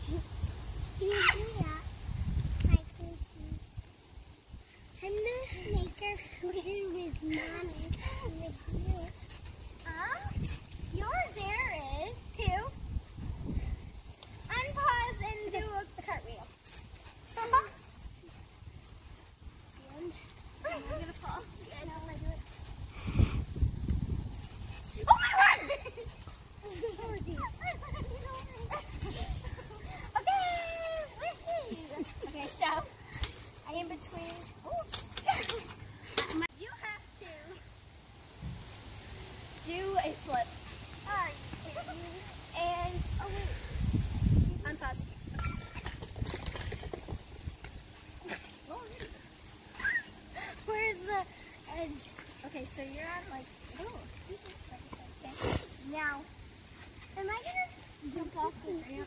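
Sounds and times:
girl's high-pitched vocal sound: 0:01.0 - 0:01.9, 0:25.0 - 0:25.8
girls calling out: 0:24.8 - 0:32.9.

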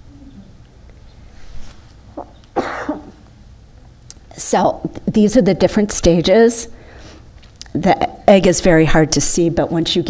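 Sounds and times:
person coughing: 0:02.2 - 0:03.2.

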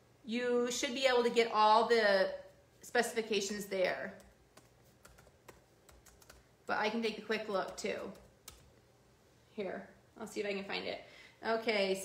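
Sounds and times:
faint keyboard typing: 0:04.1 - 0:06.6, 0:07.5 - 0:08.8.

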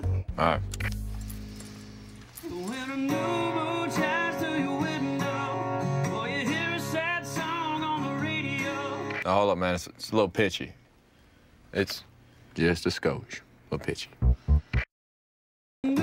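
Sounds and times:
acoustic guitar strumming: 0:00.8 - 0:09.2
man singing country song: 0:02.4 - 0:09.2.

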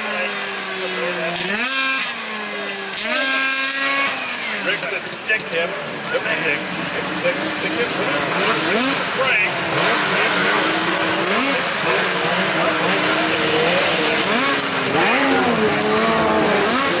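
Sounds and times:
snowmobile engines revving: 0:00.0 - 0:17.0.

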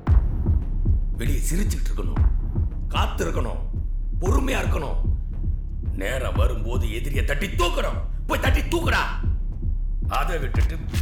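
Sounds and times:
man speaking: 0:01.2 - 0:02.3, 0:02.9 - 0:05.1, 0:05.9 - 0:09.2, 0:10.1 - 0:11.0.

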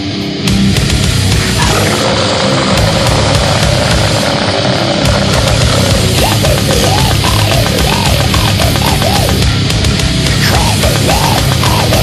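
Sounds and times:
distorted guitar: 0:00.0 - 0:12.0
fast dense drumming: 0:00.7 - 0:12.0.

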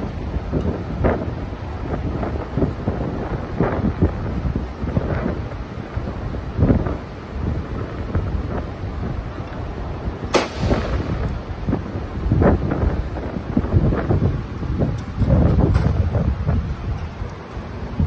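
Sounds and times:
low rumbling handling noise: 0:00.0 - 0:18.0
sharp metallic clank: 0:10.3 - 0:11.2.

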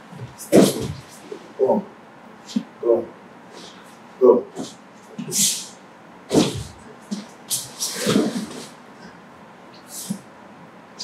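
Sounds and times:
rustling and shuffling on mats: 0:00.0 - 0:01.6, 0:03.5 - 0:05.6, 0:06.3 - 0:09.2
body thumping onto mat: 0:00.2 - 0:01.1, 0:06.3 - 0:07.2.

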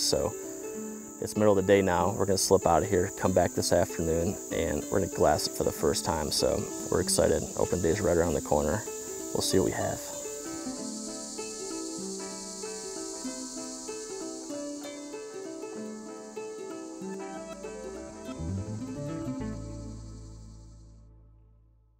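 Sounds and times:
crickets chirping: 0:00.0 - 0:21.4
plucked guitar music: 0:00.0 - 0:21.7
low bass note: 0:18.2 - 0:21.9.

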